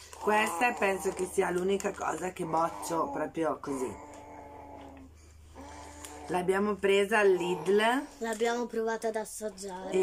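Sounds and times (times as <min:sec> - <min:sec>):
person humming: 0:02.4 - 0:06.5.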